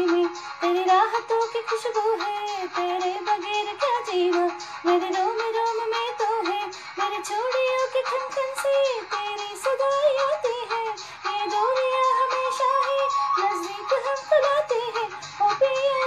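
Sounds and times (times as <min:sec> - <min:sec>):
backing music: 0:00.0 - 0:16.0
woman singing wordless melody: 0:00.0 - 0:16.0.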